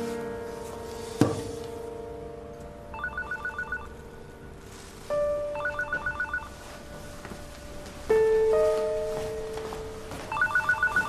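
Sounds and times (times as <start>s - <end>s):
electronic telephone ringing: 3.0s - 4.0s, 5.6s - 6.5s, 10.3s - 11.0s.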